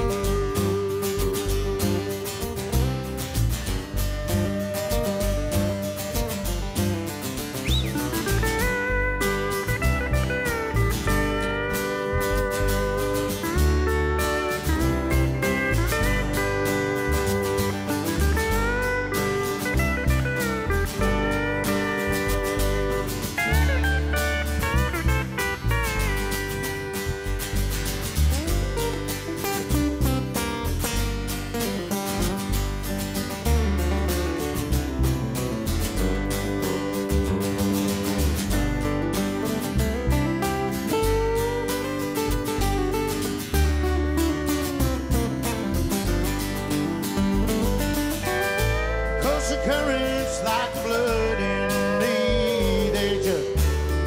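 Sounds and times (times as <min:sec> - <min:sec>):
pedal steel guitar solo: 0:00.0 - 0:54.0
strummed acoustic guitars: 0:00.0 - 0:54.0
upright bass: 0:00.0 - 0:54.0.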